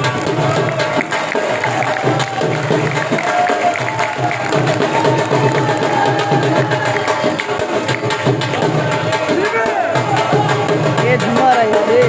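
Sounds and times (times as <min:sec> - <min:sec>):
dhol drumming: 0:00.0 - 0:12.0.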